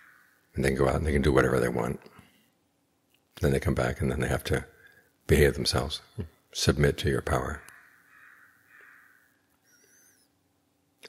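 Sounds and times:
person speaking: 0.6s - 2.1s, 3.3s - 7.6s
faint high wavering bird call: 9.1s - 10.4s.

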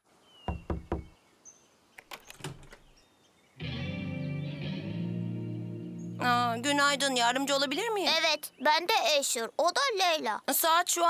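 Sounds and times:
knocks on wooden door: 0.5s - 1.1s
sustained music chord: 3.6s - 6.9s.

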